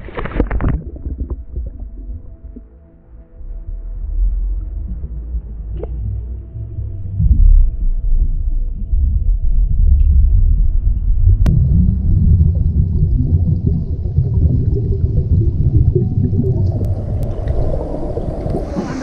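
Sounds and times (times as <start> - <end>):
water splashing: 0.0 - 2.9, 11.5 - 19.0
muffled underwater rumble: 0.0 - 19.0
faint steady hum: 11.4 - 19.0.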